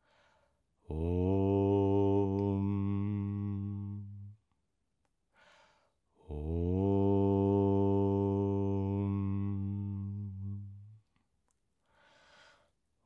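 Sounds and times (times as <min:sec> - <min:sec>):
man chanting om: 0:00.9 - 0:04.4, 0:06.2 - 0:11.0
breath in: 0:11.8 - 0:12.7.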